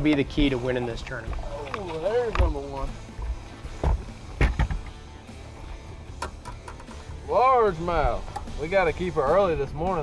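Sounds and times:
net and fish knocking on deck: 3.8s - 5.0s.

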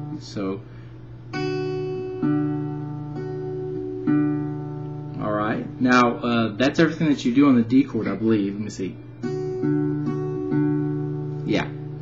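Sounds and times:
finger-picked acoustic guitar: 0.0s - 12.0s.

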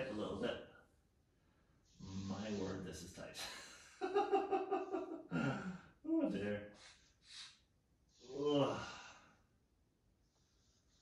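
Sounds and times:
person sighing: 5.3s - 5.9s, 8.3s - 9.2s.

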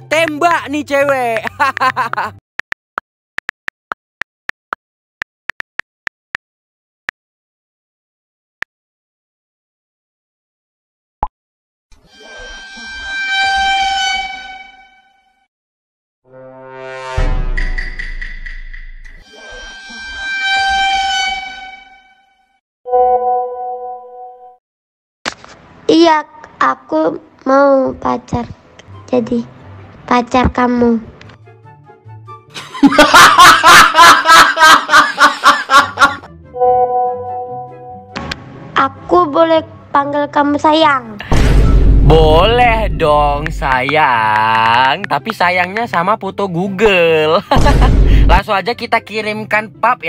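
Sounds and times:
faint background music: 0.0s - 2.3s, 25.8s - 32.9s, 38.2s - 47.4s
man laughing heartily: 1.4s - 2.4s, 32.5s - 36.3s, 47.4s - 48.3s
sustained horn-like tone: 12.1s - 15.4s, 16.3s - 17.6s, 19.3s - 24.5s, 36.5s - 38.1s
low rumble: 41.3s - 43.8s.

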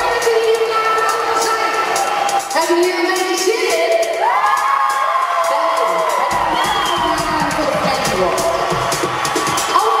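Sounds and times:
woman calling into microphone: 0.0s - 1.9s, 2.5s - 4.2s, 6.9s - 8.6s
audience cheering and whooping: 1.4s - 2.7s, 3.9s - 10.0s.

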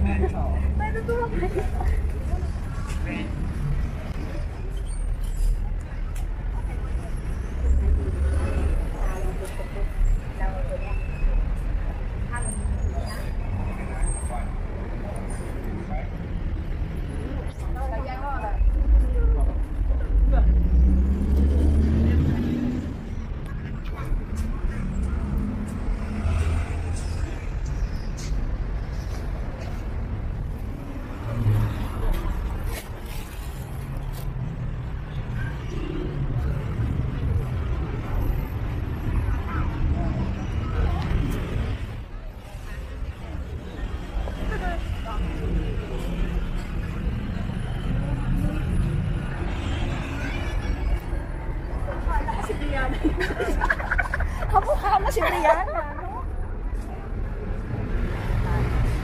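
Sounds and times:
voices of passers-by: 0.0s - 59.0s.

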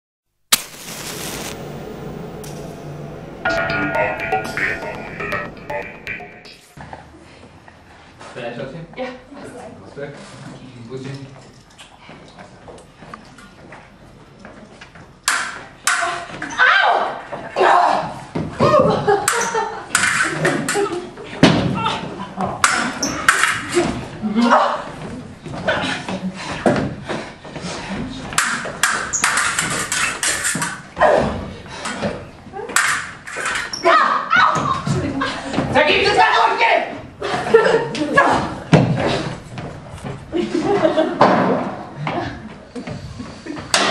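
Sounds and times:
hiss: 0.5s - 2.1s
sudden loud bang: 0.5s - 6.8s.

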